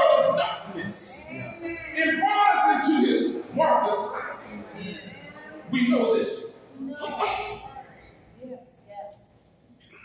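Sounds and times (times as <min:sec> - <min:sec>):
man preaching: 0:00.0 - 0:05.0, 0:05.7 - 0:07.3.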